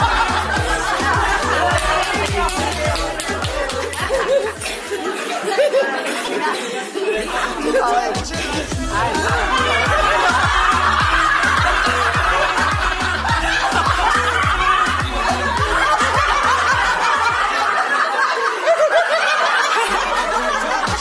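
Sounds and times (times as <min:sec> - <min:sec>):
woman laughing: 0:00.0 - 0:08.2, 0:08.9 - 0:21.0
background music with steady beat: 0:00.0 - 0:21.0.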